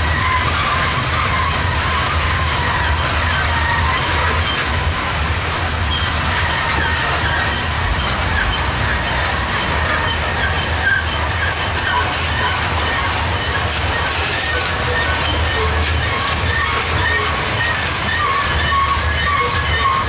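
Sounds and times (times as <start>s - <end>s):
freight train rumbling and rattling: 0.0s - 20.0s
high-pitched wheel squeals: 0.0s - 20.0s.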